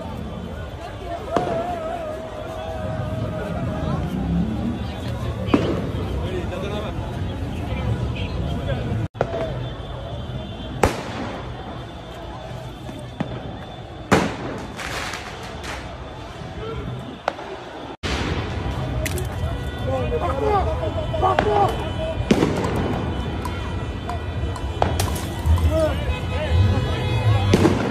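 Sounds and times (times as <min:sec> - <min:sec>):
crowd and street noise: 0:00.0 - 0:27.9.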